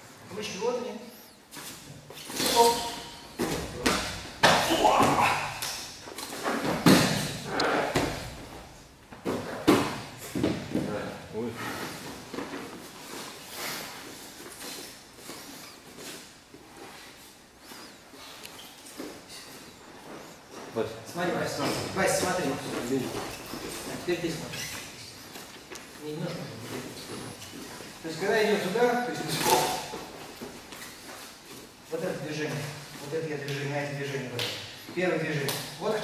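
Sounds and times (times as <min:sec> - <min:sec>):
bodies thudding on gym mats: 0:06.4 - 0:11.1.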